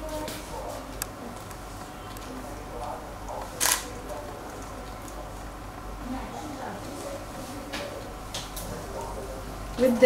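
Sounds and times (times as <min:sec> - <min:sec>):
low background murmur: 0:00.0 - 0:10.0
camera shutter click: 0:03.6 - 0:03.9.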